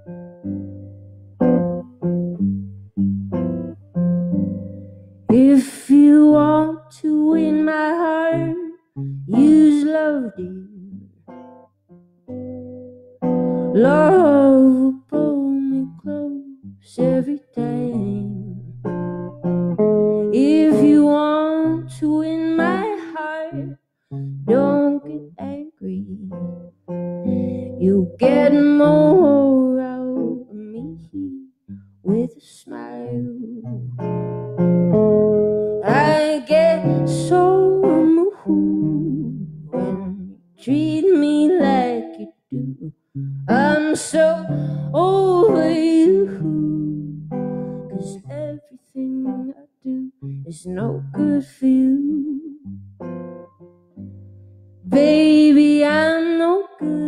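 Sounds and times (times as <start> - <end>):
electric guitar picking: 0.0 - 49.5, 50.2 - 57.0
woman singing: 5.3 - 11.1, 13.6 - 18.9, 20.2 - 23.8, 24.4 - 26.6, 27.2 - 33.9, 35.6 - 52.7, 54.8 - 57.0.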